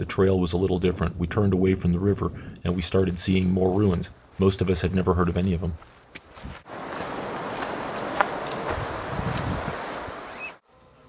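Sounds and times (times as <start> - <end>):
footfalls on dirt trail: 5.7 - 10.2
rushing outdoor hiss: 6.5 - 10.6.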